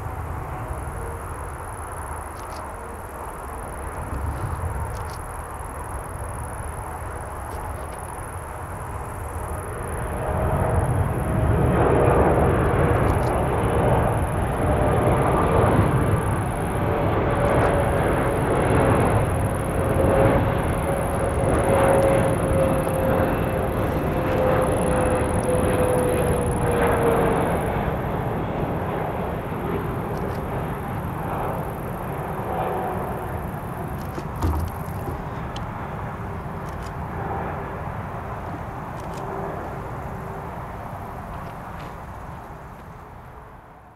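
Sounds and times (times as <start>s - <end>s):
jet aircraft rumble with whine: 0.0s - 43.9s.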